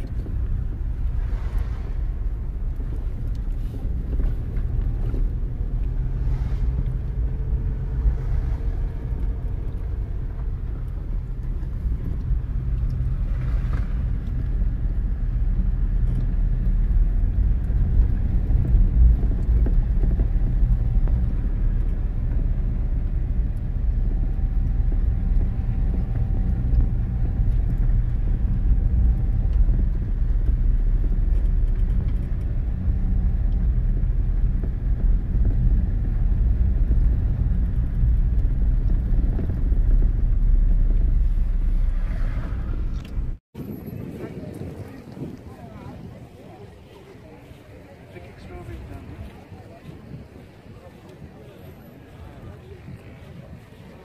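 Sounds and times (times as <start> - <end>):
car engine and road rumble: 0.0 - 54.0.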